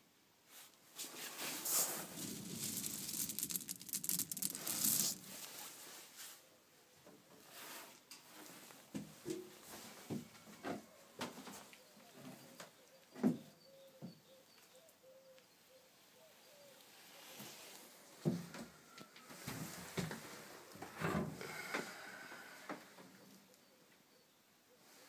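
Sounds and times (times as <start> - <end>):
wood pellets rustling: 1.0 - 6.1.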